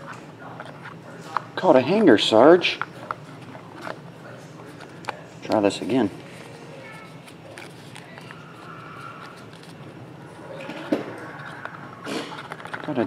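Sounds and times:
faint voices: 0.0 - 13.0
low room hum: 0.0 - 13.0.

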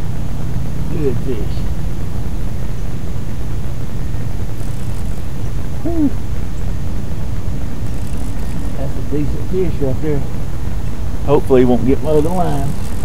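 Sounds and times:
low rumble with faint hum: 0.0 - 13.0.

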